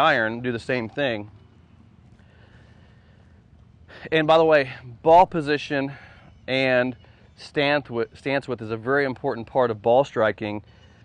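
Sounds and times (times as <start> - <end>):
faint high hum: 0.0 - 11.0.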